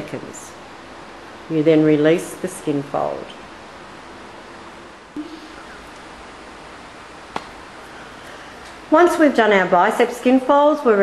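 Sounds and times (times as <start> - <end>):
woman speaking: 0.0 - 0.6, 1.5 - 3.4, 8.9 - 11.0
faint room hiss: 0.0 - 11.0.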